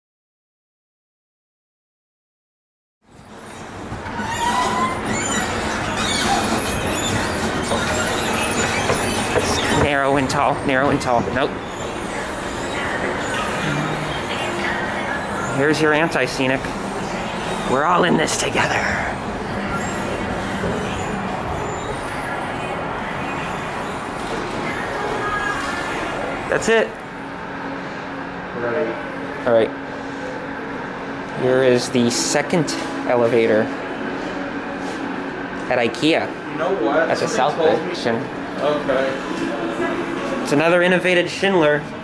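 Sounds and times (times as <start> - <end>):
elevator travelling in shaft: 3.1 - 42.0
escalator rumbling: 3.2 - 42.0
faint squeaks: 3.3 - 26.3
faint voices: 5.0 - 42.0.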